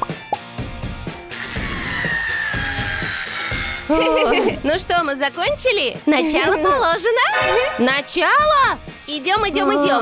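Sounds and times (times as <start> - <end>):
background music with beat: 0.0 - 4.5
cordless drill driving screw: 1.3 - 3.9.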